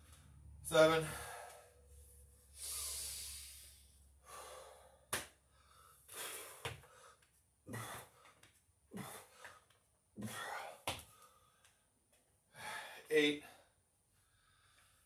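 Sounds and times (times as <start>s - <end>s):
man breathing hard: 1.0s - 11.8s, 12.5s - 15.0s.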